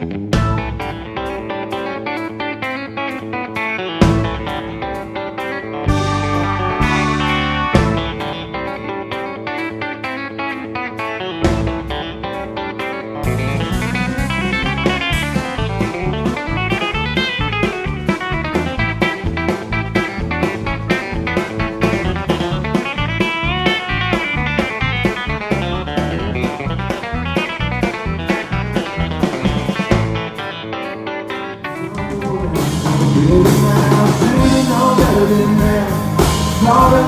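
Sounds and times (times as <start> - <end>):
drum kit beat: 0.0 - 37.0
electric guitar lead: 0.0 - 37.0
live band playing: 0.0 - 37.0.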